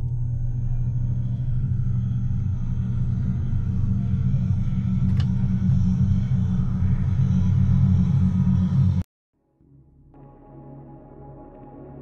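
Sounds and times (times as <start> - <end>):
deep rumbling drone: 0.0 - 9.0.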